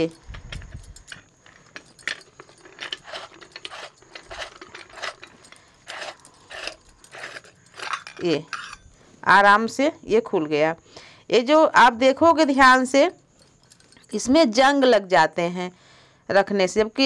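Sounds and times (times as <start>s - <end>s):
metal lid clinking and scraping: 0.0s - 9.0s, 13.4s - 14.3s.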